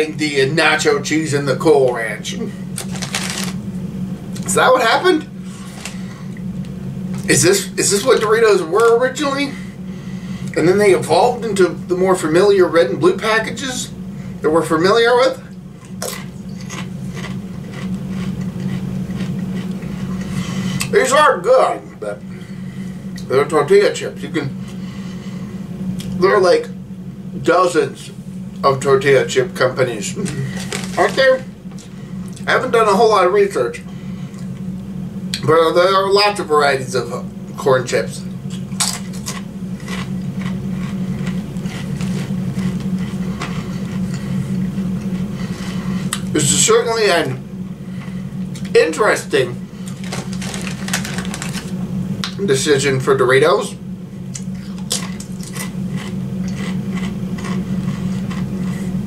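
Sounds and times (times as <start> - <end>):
steady low hum: 0.0 - 59.0
chewing crunchy chips: 2.7 - 3.6, 15.5 - 20.9, 30.0 - 32.5, 38.4 - 46.3, 49.7 - 52.4, 54.3 - 59.0.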